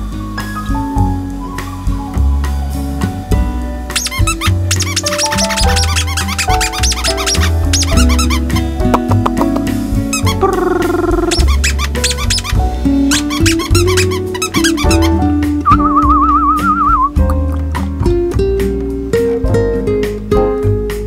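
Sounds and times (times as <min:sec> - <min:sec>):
background music with a beat: 0:00.0 - 0:21.0
high squeaky lead notes: 0:03.9 - 0:17.4.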